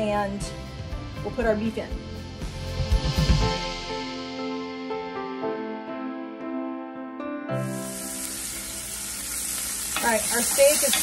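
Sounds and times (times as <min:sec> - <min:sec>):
steak sizzling in a skillet: 0:07.6 - 0:11.0.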